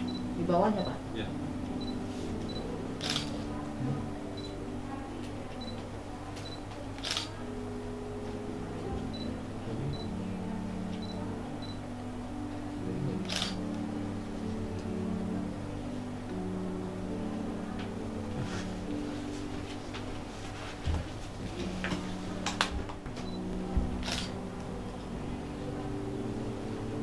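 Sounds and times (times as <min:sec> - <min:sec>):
soft music of held notes: 0:00.0 - 0:27.0
camera shutter clicks: 0:07.0 - 0:07.3, 0:13.3 - 0:13.6.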